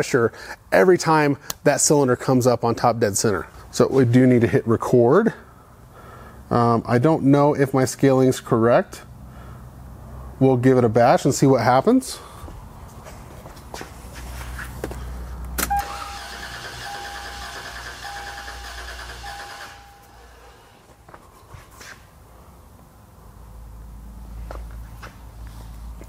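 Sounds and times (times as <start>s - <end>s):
car engine cranking on starter: 15.6s - 20.8s
repeating beep: 16.8s - 20.2s.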